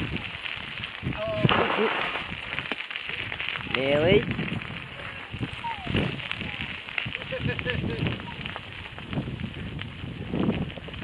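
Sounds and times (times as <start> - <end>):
bicycle tyres on gravel: 0.0 - 11.0.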